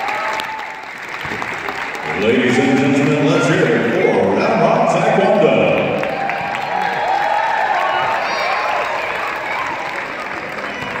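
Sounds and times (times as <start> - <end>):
audience applauding: 0.0 - 4.0, 4.6 - 11.0
voices: 2.0 - 5.9.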